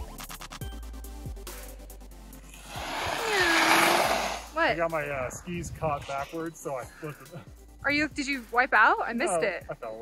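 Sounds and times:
skis scraping on packed snow: 2.5s - 4.6s.

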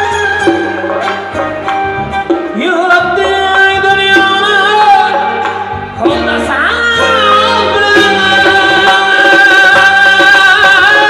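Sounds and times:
instrumental accompaniment: 0.0s - 11.0s.

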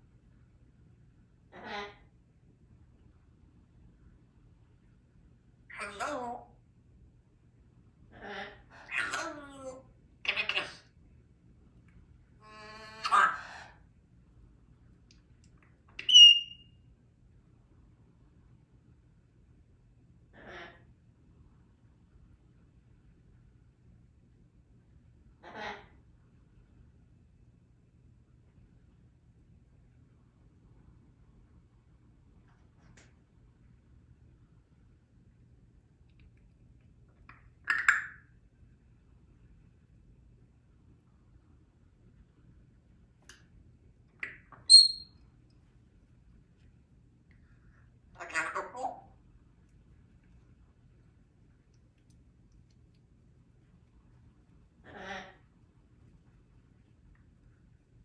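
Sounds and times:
parrot high whistle: 16.0s - 16.7s, 44.7s - 45.1s.

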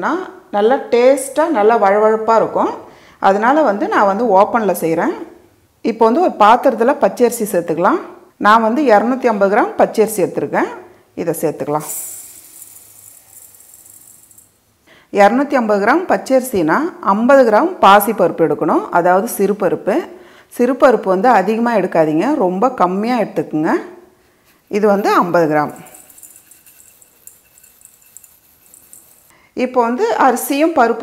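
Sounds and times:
rice poured into metal pot: 11.8s - 14.5s, 24.5s - 29.3s.

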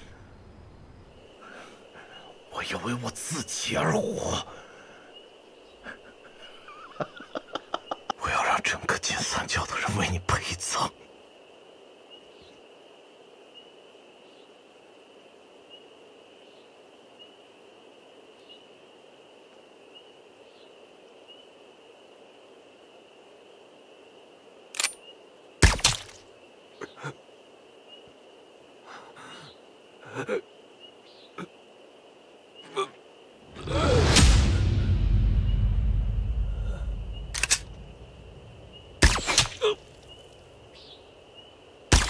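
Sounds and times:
insects chorus at night: 0.0s - 42.0s
rifle metallic clicks: 24.8s - 25.0s, 37.2s - 37.8s.

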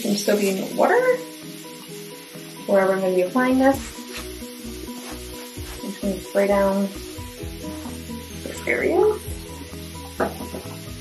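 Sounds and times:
background music with steady beat: 0.0s - 11.0s
spray bottle hissing sprays: 3.5s - 11.0s.

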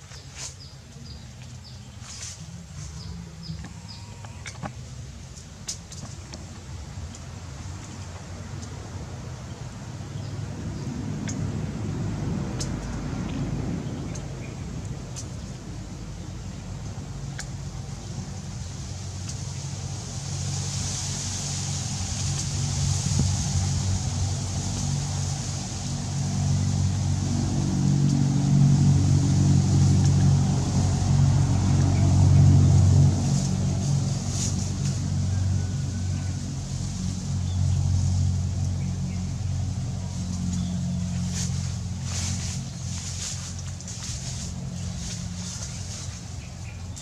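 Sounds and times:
low motor rumble: 0.0s - 47.0s.

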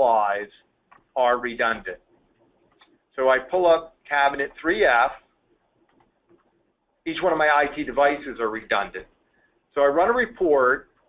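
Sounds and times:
man speaking: 0.0s - 0.5s, 1.2s - 2.0s, 3.2s - 5.2s, 7.1s - 9.1s, 9.8s - 10.8s.

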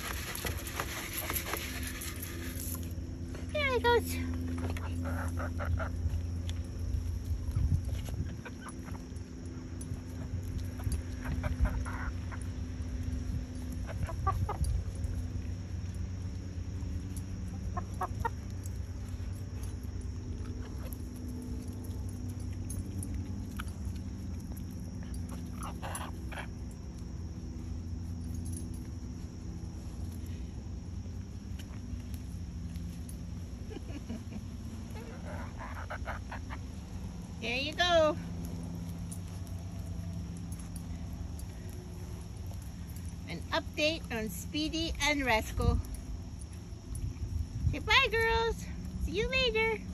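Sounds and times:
hens clucking: 4.8s - 6.2s, 10.7s - 12.6s, 34.8s - 37.0s.

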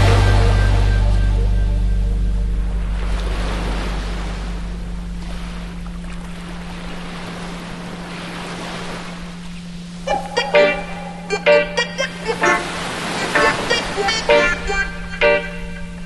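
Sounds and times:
music: 0.0s - 3.6s, 10.1s - 12.7s, 14.3s - 15.9s
steady low tone: 0.0s - 16.0s
surf washing on beach: 2.8s - 16.0s.

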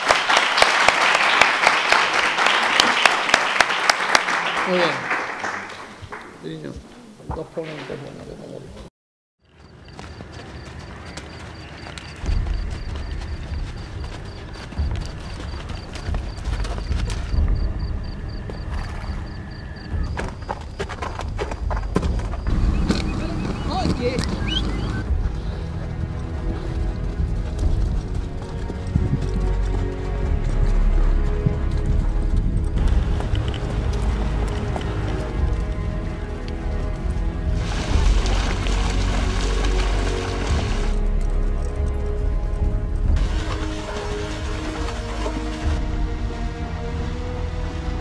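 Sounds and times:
horse hooves walking: 9.4s - 48.0s
background music sustained notes: 20.7s - 48.0s.

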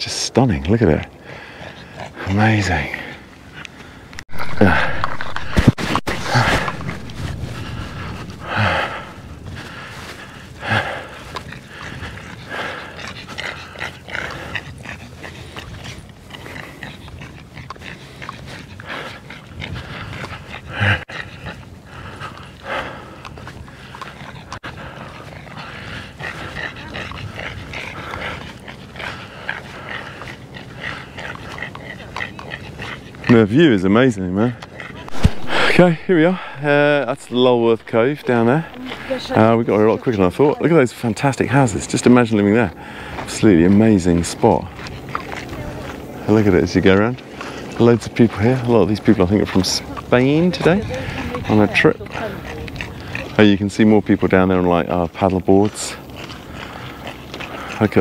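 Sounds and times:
dog panting: 0.0s - 58.0s.

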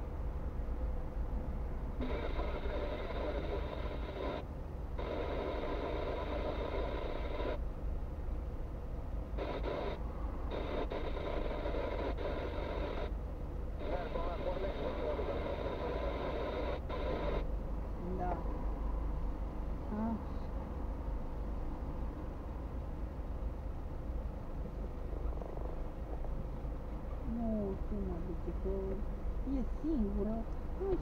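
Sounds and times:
person talking: 27.3s - 31.0s.

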